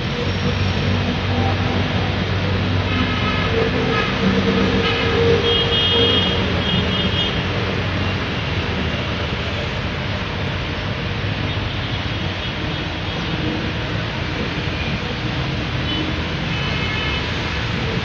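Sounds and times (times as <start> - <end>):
diesel train rumble: 0.0 - 18.0
train horn: 1.1 - 7.4.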